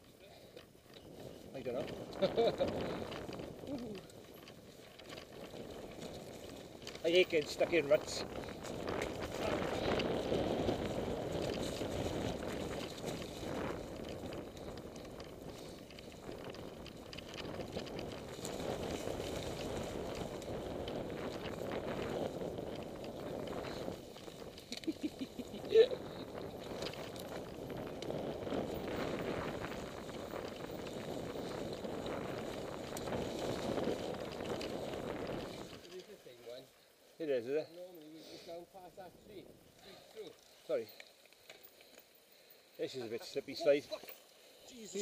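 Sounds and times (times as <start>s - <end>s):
bike rattling: 0.0s - 45.0s
bike tyres rushing over leaves: 0.1s - 45.0s.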